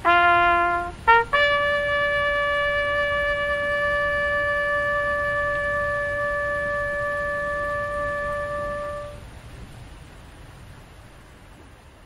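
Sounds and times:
trumpet long steady note: 0:00.0 - 0:09.2.

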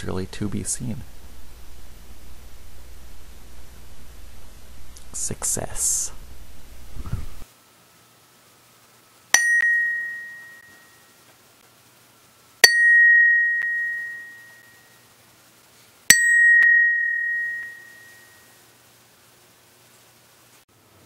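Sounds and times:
metal bell struck with hammer: 0:09.4 - 0:11.0, 0:12.6 - 0:14.8, 0:16.1 - 0:18.4.

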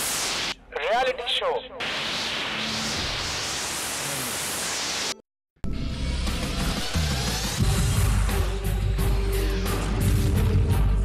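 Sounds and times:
static hiss: 0:00.0 - 0:05.2.

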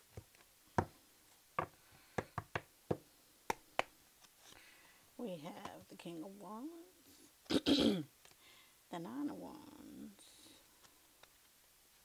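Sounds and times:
deck of cards tapping: 0:00.1 - 0:01.0, 0:01.6 - 0:03.9.

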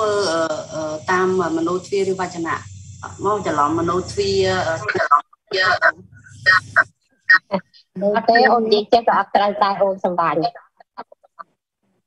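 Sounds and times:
person speaking: 0:00.0 - 0:11.6.

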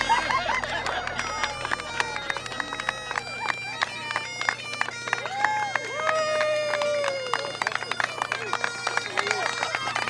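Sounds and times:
bagpipes playing: 0:00.0 - 0:10.0
drawn-out whoops: 0:00.0 - 0:10.0
group cheering and clapping: 0:00.0 - 0:10.0.

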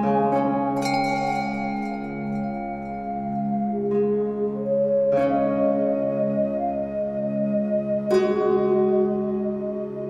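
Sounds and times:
ambient instrumental music: 0:00.0 - 0:10.0.

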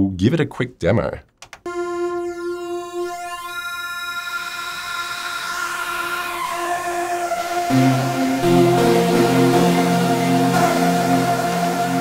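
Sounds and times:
gritty sawtooth synthesizer note: 0:01.7 - 0:12.0.

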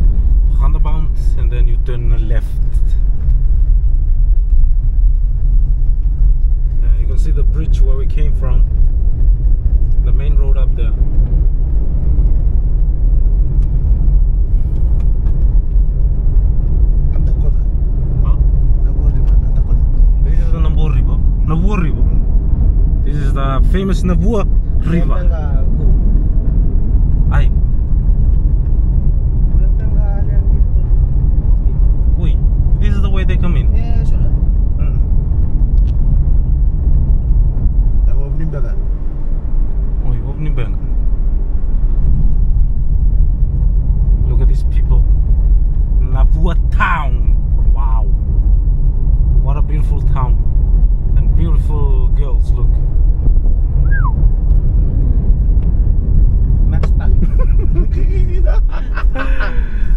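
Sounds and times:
car cabin road and engine noise: 0:00.0 - 0:59.9.

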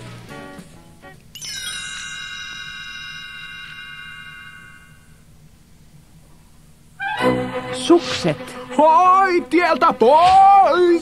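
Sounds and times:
music: 0:00.0 - 0:05.4, 0:07.0 - 0:11.0
single chime tone: 0:01.6 - 0:05.2.

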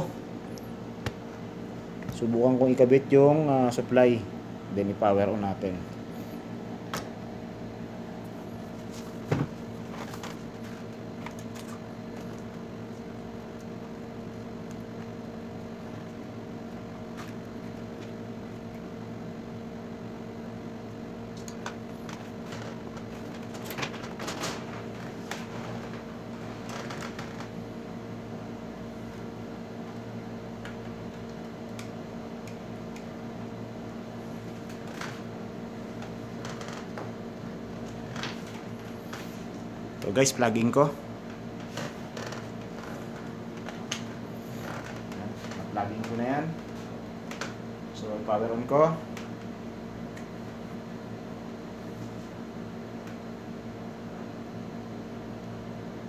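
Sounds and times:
machine hum: 0:00.0 - 0:56.0.

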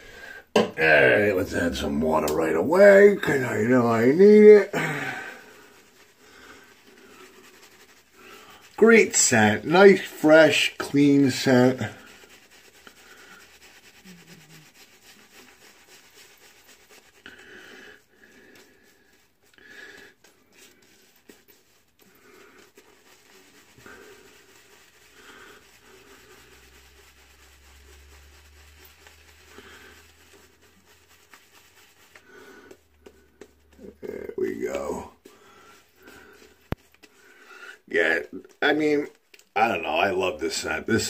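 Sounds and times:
breathing: 0:00.0 - 0:00.5, 0:04.8 - 0:07.6, 0:08.2 - 0:08.7, 0:17.2 - 0:20.2, 0:25.1 - 0:26.4, 0:35.3 - 0:37.8
shaving brush rubbing lather: 0:00.0 - 0:41.0.

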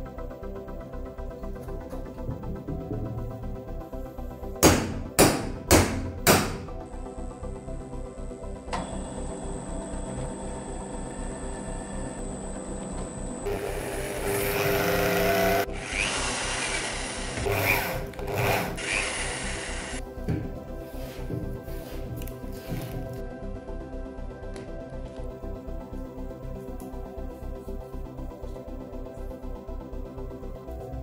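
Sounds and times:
background music: 0:00.0 - 0:31.0
drill press drilling steel: 0:12.9 - 0:20.0.

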